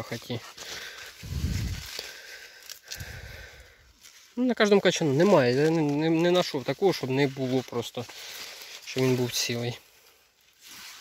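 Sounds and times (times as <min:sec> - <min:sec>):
rustling of corn husk: 0:00.0 - 0:11.0.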